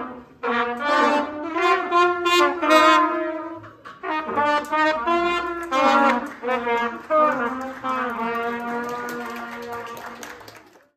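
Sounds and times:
trumpets holding a long note: 0:00.0 - 0:10.2
hand claps: 0:05.6 - 0:10.9.

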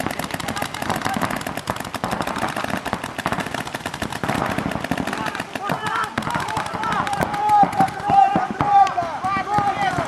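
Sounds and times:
paintball markers firing: 0:00.0 - 0:10.0.

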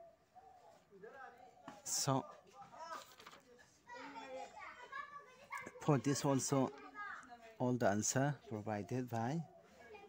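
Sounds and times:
children's voices chattering: 0:00.0 - 0:10.0
man speaking: 0:01.0 - 0:02.6, 0:07.6 - 0:09.5.

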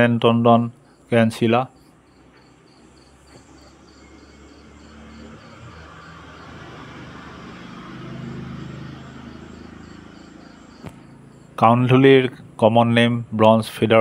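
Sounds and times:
insects chirping: 0:00.7 - 0:11.8
vehicle engine hum passing: 0:00.7 - 0:14.0.

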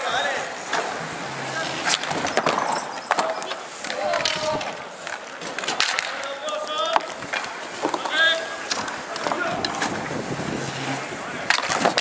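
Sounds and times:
skate wheels rolling: 0:00.0 - 0:12.0
hockey sticks clacking: 0:00.6 - 0:12.0
wind noise on microphone: 0:08.7 - 0:12.0.

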